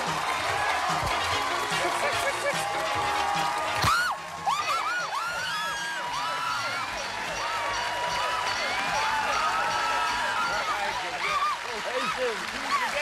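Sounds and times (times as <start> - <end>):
game show music: 0.0 - 13.0
people screaming and whooping: 0.0 - 13.0
studio audience cheering: 0.0 - 13.0.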